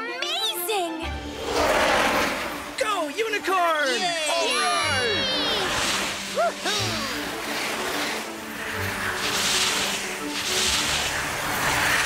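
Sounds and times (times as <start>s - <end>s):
background music: 0.0s - 12.0s
cartoon rocket whoosh: 5.2s - 8.2s.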